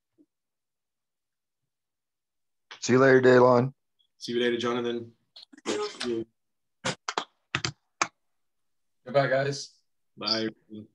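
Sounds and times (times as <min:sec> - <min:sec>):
computer keyboard typing: 0:07.5 - 0:08.1.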